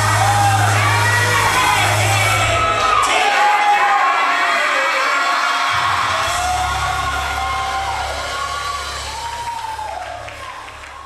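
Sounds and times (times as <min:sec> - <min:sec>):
congregation cheering: 0:00.0 - 0:11.0.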